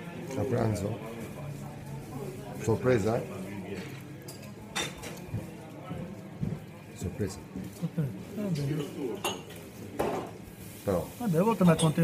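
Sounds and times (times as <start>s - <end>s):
crockery clink: 8.6s - 10.3s, 11.6s - 12.0s.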